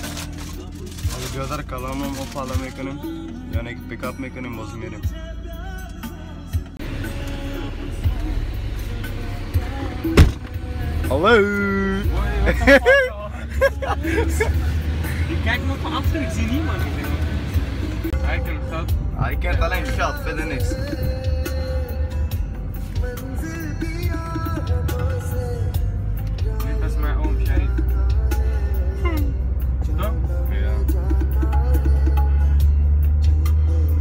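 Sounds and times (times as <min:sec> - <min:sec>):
car engine and road rumble: 0:00.0 - 0:34.0
music: 0:00.0 - 0:34.0.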